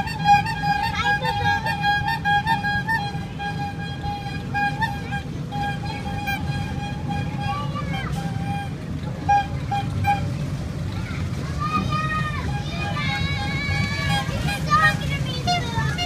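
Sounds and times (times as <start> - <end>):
kiddie ride rumbling: 0.0 - 16.0.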